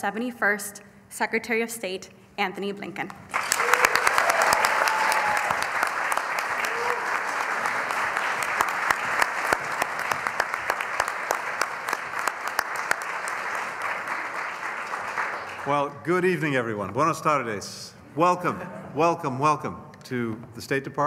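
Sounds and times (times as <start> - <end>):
audience clapping: 3.3 - 16.0.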